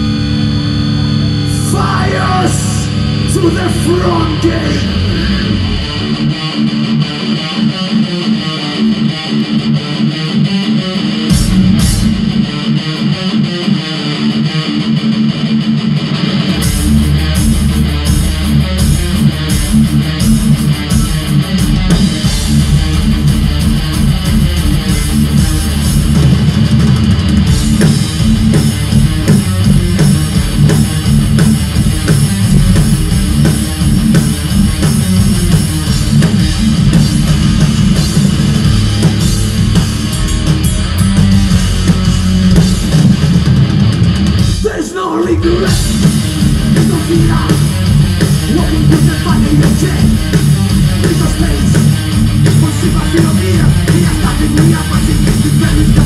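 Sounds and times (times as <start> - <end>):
bass guitar: 0.0 - 56.0
distorted electric guitars riff: 0.0 - 56.0
drums: 0.0 - 56.0.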